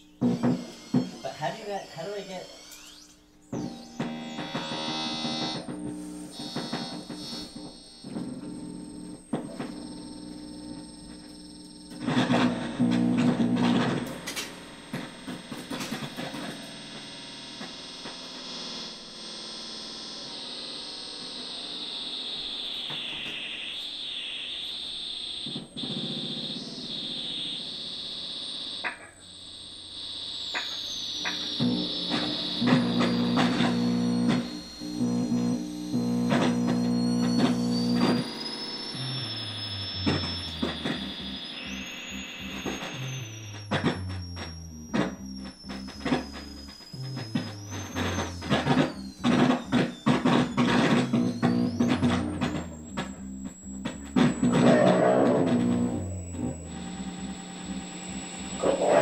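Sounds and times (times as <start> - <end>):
high synthesizer drone: 0.0 - 9.7, 21.2 - 59.0
sliding whistle-like tones: 30.3 - 59.0
low bass line: 32.9 - 38.3, 42.5 - 59.0.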